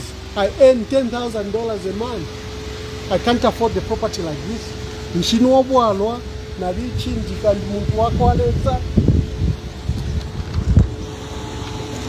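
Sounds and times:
wind rumbling on microphone: 6.7 - 11.9.

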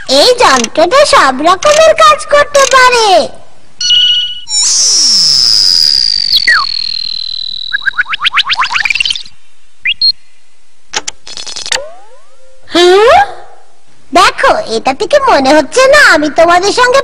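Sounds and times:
quick high-pitched chirps: 3.8 - 9.3.

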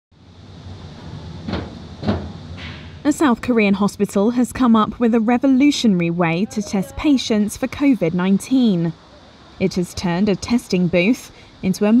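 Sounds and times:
steady low hum: 0.2 - 12.0.

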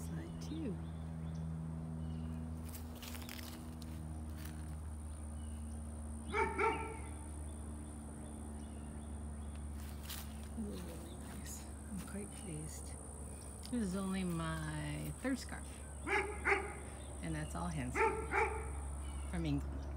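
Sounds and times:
steady low hum: 0.0 - 19.9
dog barking: 6.3 - 7.1, 16.0 - 16.9, 17.9 - 18.8.

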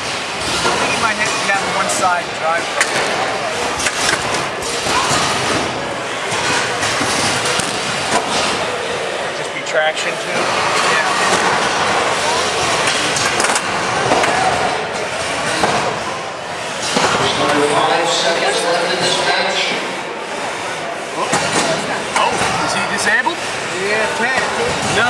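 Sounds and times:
robots clattering and knocking: 0.1 - 2.1, 2.7 - 8.8, 10.2 - 16.1
people talking: 0.6 - 25.0.

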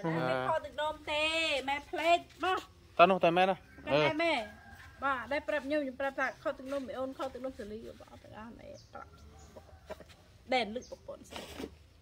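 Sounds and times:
woman speaking: 0.0 - 2.7, 3.9 - 9.2, 10.5 - 11.3
faint chicken clucking: 7.2 - 11.3.

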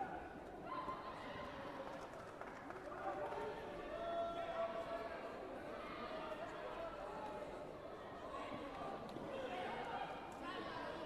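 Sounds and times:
voices echoing in sports hall: 3.5 - 11.0.

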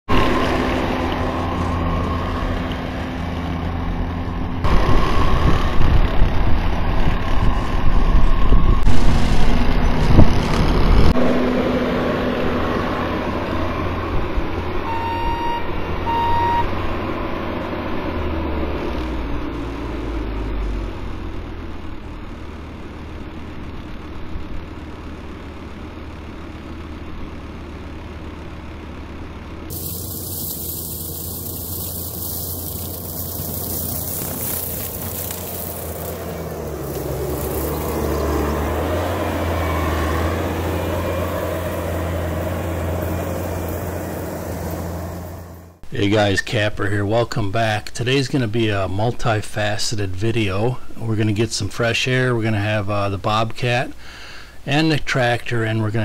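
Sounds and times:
diesel engine under load: 0.1 - 46.0
short beeps: 14.9 - 16.7
brush cutter mowing grass: 29.7 - 39.4.

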